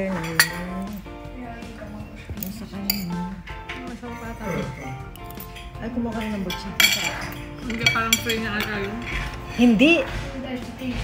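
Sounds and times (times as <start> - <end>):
background music: 0.0 - 11.0
cutlery clinking on plate: 0.1 - 1.0, 5.2 - 9.6.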